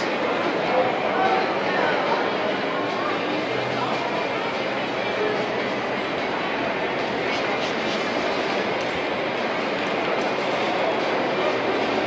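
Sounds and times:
indoor arena noise: 0.0s - 12.0s.

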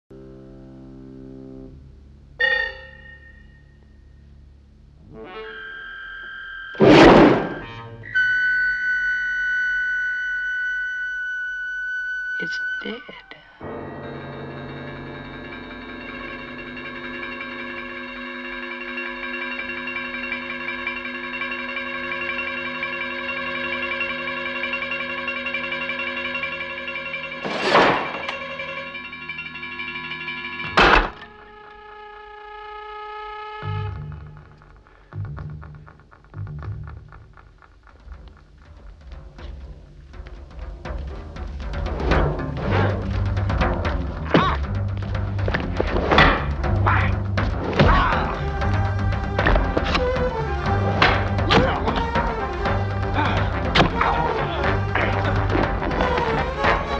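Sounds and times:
suspenseful film score: 0.3s - 56.9s
sharp loud hits: 6.8s - 8.0s, 27.4s - 28.5s.

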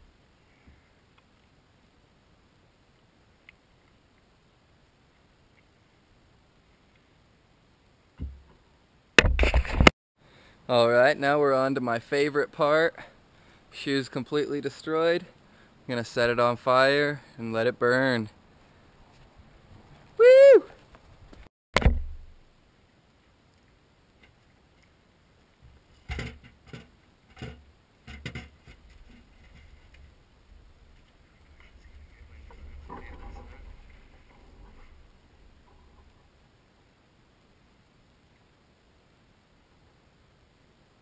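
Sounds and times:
sharp thump: 8.2s - 8.5s, 9.2s - 9.9s, 21.8s - 22.3s.

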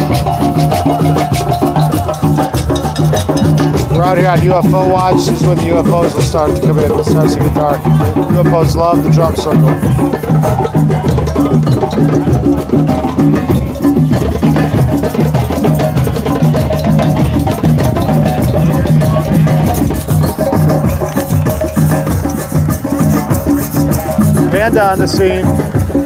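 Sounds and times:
many drums in fast rhythm: 0.0s - 26.0s.

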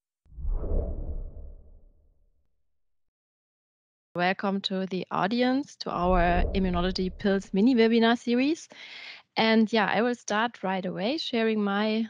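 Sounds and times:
whoosh with deep rumble: 0.3s - 2.3s, 6.0s - 7.6s.

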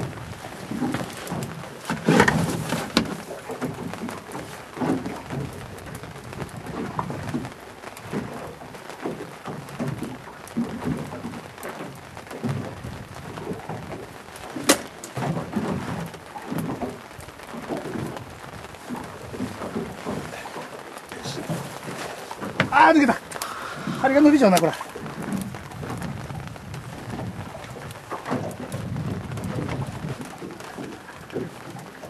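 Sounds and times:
water around a boat: 0.0s - 32.0s
wind: 0.0s - 32.0s.

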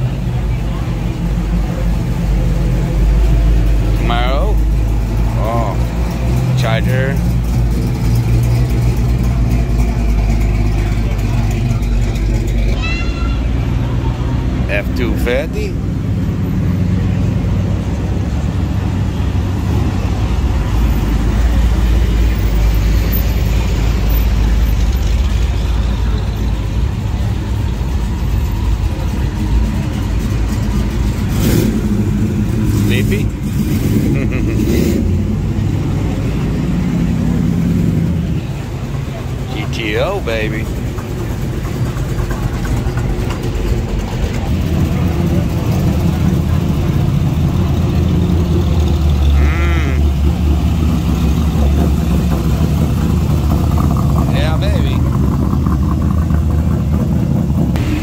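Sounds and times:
car engines idling and rumbling: 0.0s - 58.0s.

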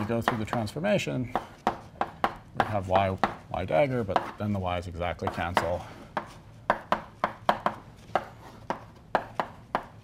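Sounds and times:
chalk tapping on a blackboard: 0.0s - 3.5s, 4.1s - 4.5s, 5.2s - 10.0s.

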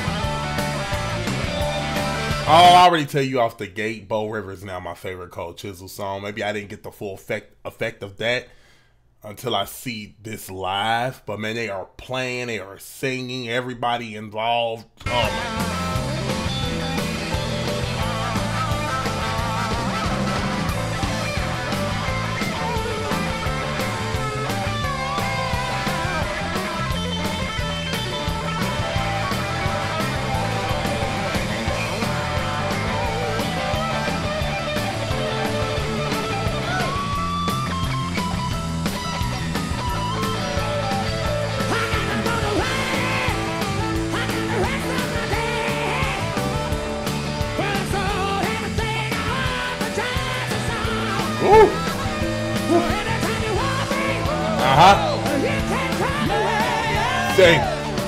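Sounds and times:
live rock band playing: 0.0s - 2.8s, 15.1s - 58.0s
person singing: 47.6s - 57.8s.

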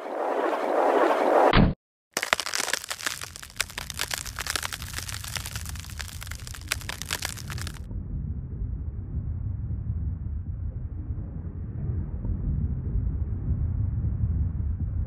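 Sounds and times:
dense crackling and popping: 2.1s - 7.8s
low rumble: 7.9s - 15.0s.

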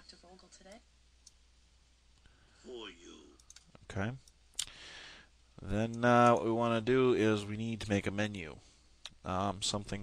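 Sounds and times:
computer mouse clicking: 3.4s - 4.4s.

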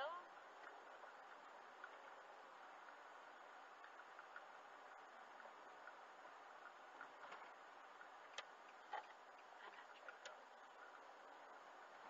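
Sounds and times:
in-car road hiss: 0.0s - 12.0s
light irregular clicks: 3.7s - 11.1s.

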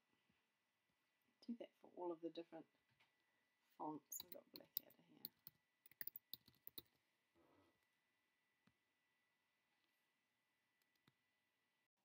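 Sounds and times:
keyboard typing: 4.2s - 6.9s.

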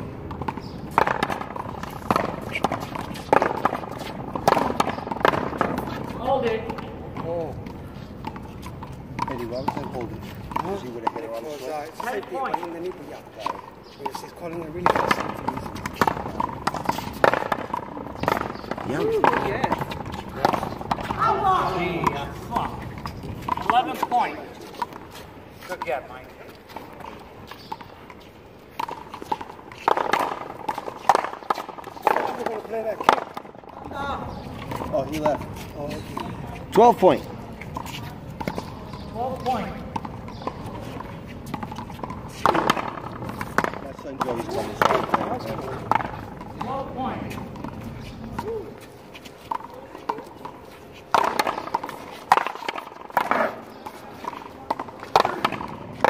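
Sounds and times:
voices talking: 1.6s - 56.0s.

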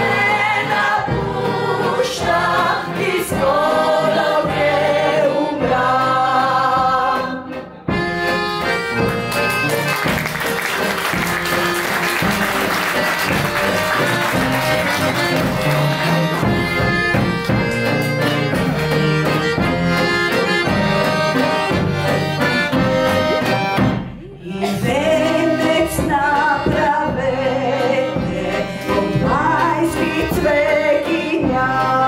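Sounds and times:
people singing folk song: 0.0s - 7.9s, 24.4s - 32.0s
accordion playing: 0.0s - 32.0s
drum beating a rhythm: 0.0s - 32.0s.

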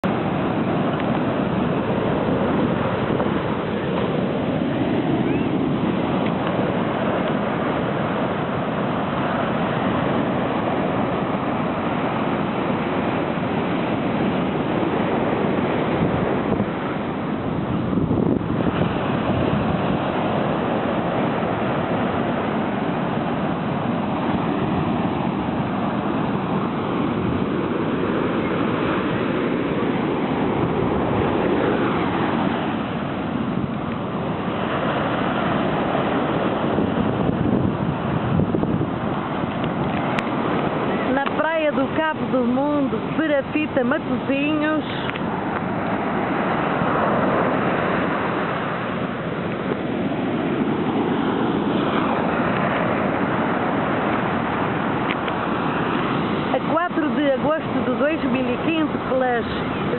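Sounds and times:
ocean surf breaking: 0.0s - 59.9s
wind buffeting microphone: 0.0s - 59.9s.

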